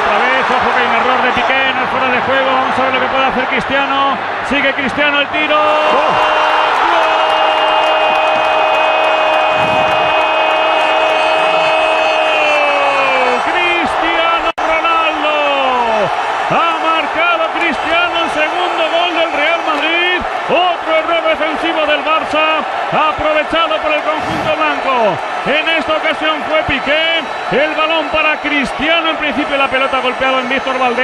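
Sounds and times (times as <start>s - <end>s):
stadium crowd roaring: 0.0s - 31.0s
commentator shouting goal: 12.0s - 31.0s.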